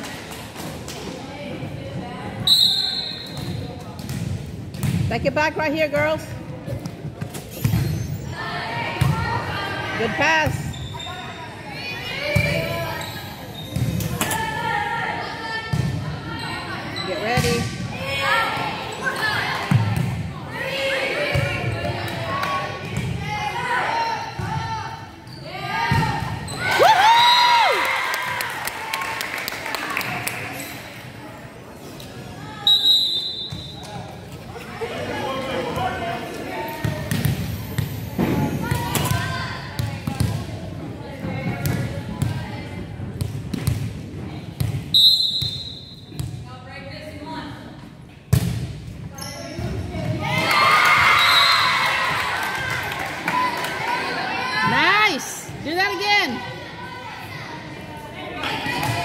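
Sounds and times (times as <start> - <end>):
referee's whistle blasts: 2.4 - 3.6, 32.6 - 33.8, 44.9 - 46.1
crowd shouting and cheering: 25.6 - 31.2, 50.1 - 59.0.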